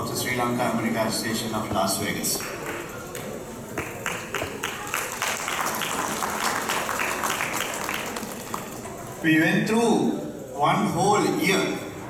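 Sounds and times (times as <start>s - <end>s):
audience applauding: 2.4s - 9.0s.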